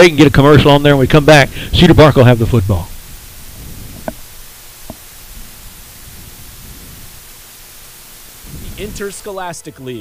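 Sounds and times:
steady line hiss: 0.0s - 10.0s.

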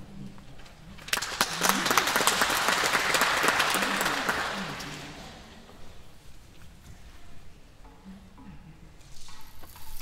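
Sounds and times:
audience applause: 1.1s - 5.4s.

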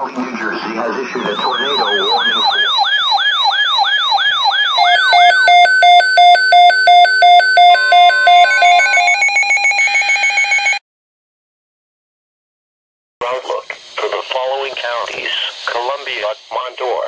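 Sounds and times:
high warbling tone: 1.0s - 9.3s
alternating high and low beeps: 1.1s - 10.8s
electronic siren whooping: 1.1s - 10.8s.

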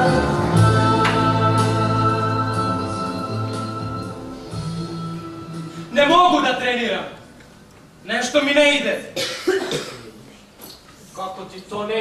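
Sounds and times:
man coughing: 9.2s - 10.2s.

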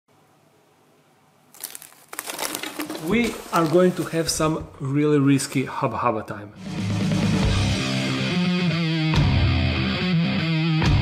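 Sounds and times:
crackling crinkling noise: 1.5s - 4.6s.

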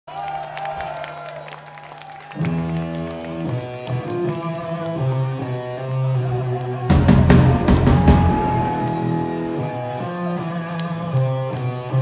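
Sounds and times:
live metal band playing: 6.9s - 10.8s.

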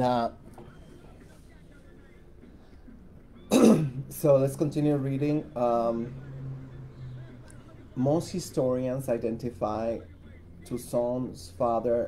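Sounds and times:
woman clearing her throat: 3.5s - 4.0s.

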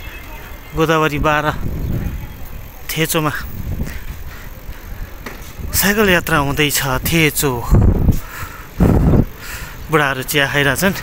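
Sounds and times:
man speaking: 0.0s - 1.6s, 2.8s - 3.6s, 5.7s - 7.8s, 9.9s - 11.0s
bicycle road noise: 0.0s - 11.0s
wind on microphone: 1.4s - 2.7s, 3.4s - 9.4s.

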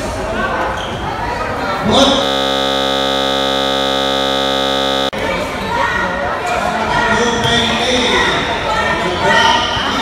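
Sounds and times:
scoreboard buzzer: 2.0s - 5.2s.

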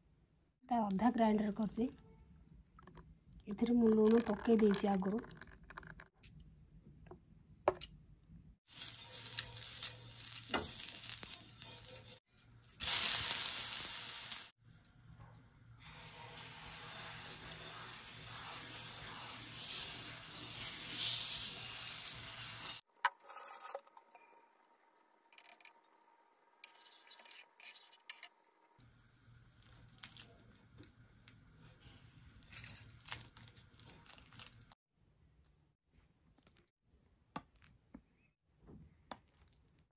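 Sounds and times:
batter sizzling on hot pan: 8.7s - 22.9s.

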